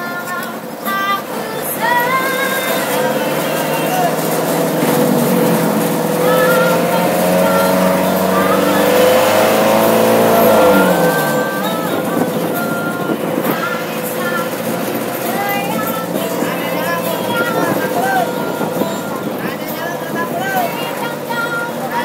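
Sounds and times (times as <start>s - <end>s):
minibus engine revving: 0.0s - 22.0s
woman singing: 0.0s - 22.0s.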